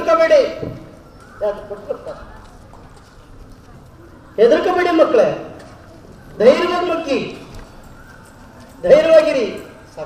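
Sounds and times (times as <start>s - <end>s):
man speaking over loudspeaker: 0.0s - 2.3s, 4.4s - 5.6s, 6.4s - 7.5s, 8.8s - 10.0s
faint background noise: 0.0s - 10.0s.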